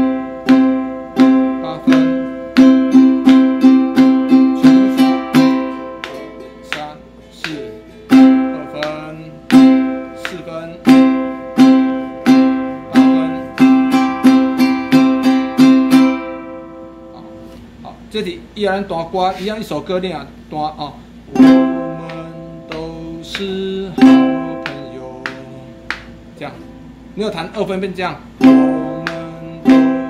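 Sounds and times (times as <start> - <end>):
ukulele strumming chords: 0.0 - 17.8, 21.2 - 30.0.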